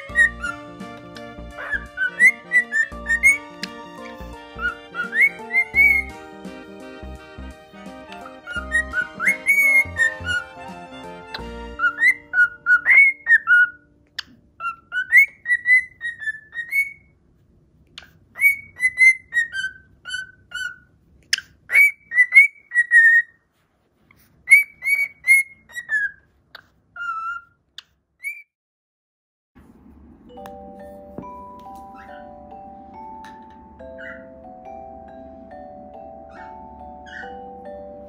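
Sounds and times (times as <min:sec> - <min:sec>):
cockatiel whistling: 0:00.0 - 0:06.2, 0:08.1 - 0:10.7, 0:11.3 - 0:13.8, 0:14.6 - 0:17.1, 0:18.4 - 0:20.9, 0:21.7 - 0:23.3, 0:24.5 - 0:26.2, 0:34.0 - 0:34.3
background music: 0:00.0 - 0:14.0, 0:30.3 - 0:38.0.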